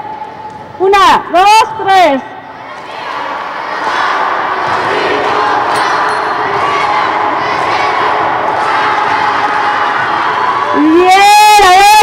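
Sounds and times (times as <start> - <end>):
children shouting a cheer: 2.6 - 12.0.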